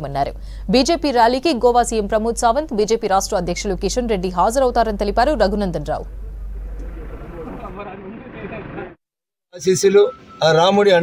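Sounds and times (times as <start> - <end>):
vehicle noise: 5.2 - 9.0.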